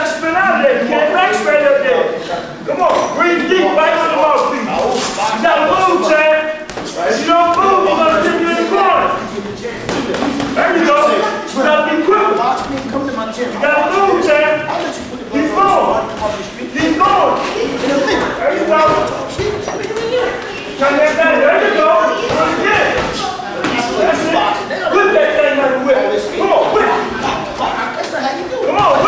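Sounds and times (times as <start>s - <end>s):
men talking and calling out: 0.0s - 29.0s.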